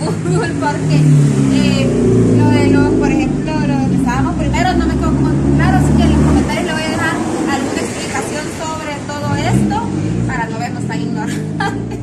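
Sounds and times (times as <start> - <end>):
people talking: 0.0 - 12.0
vehicle engine rumbling: 0.0 - 12.0.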